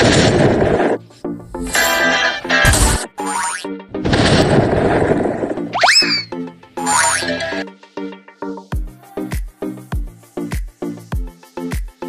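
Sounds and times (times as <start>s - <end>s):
burst of noise: 0.0s - 1.0s, 4.0s - 6.3s
falling sweep: 4.0s - 6.3s
springy boing: 5.7s - 7.6s
upbeat music: 5.8s - 7.6s.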